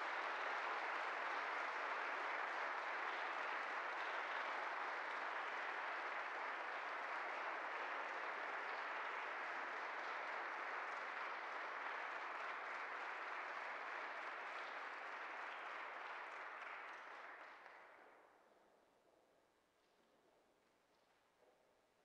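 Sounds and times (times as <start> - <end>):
audience applauding: 0.0 - 17.9.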